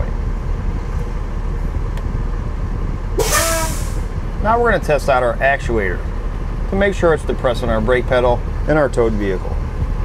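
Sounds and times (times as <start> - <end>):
motorhome engine idling: 0.0 - 10.0.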